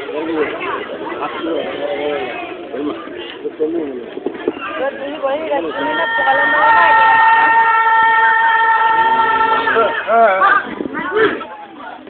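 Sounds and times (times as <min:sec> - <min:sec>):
people's voices and calls: 0:00.0 - 0:12.0.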